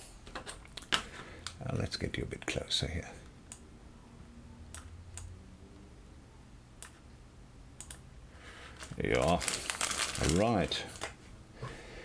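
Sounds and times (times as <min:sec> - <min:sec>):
computer mouse clicks: 0:07.8 - 0:08.0
plastic bag crinkling: 0:08.6 - 0:11.2.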